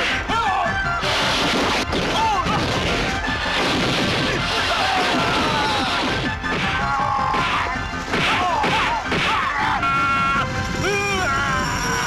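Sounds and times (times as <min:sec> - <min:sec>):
music track: 0:00.0 - 0:12.0
crashing and smashing effects: 0:01.0 - 0:09.5
sharp blows: 0:01.0 - 0:12.0.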